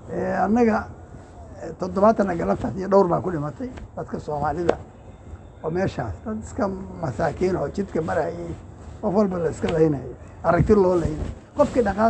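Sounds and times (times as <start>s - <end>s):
man talking: 0.0s - 4.9s, 5.6s - 12.0s.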